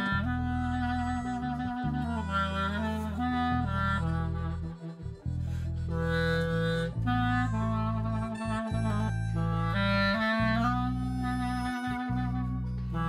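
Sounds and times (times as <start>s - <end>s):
low held accompaniment: 0.0s - 13.0s
saxophone slow melody: 0.0s - 13.0s.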